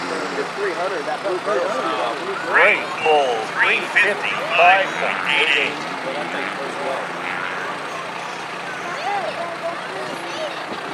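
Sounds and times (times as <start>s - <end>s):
heavy vehicle engine running: 0.0s - 10.9s
indistinct voices: 0.0s - 10.9s.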